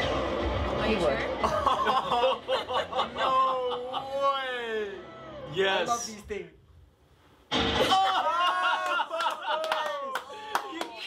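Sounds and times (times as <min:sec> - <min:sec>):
explosion sound effect: 0:07.5 - 0:08.1
people clapping: 0:08.2 - 0:11.0.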